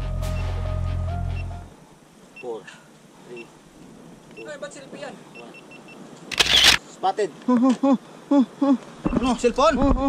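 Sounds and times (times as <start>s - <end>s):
faint short beeps: 5.3s - 6.8s
camera shutter burst: 6.3s - 6.8s.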